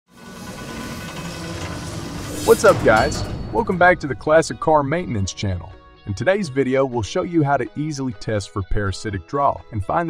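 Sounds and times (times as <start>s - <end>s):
low mechanical clatter: 0.1s - 4.7s
swell of noise: 0.1s - 5.2s.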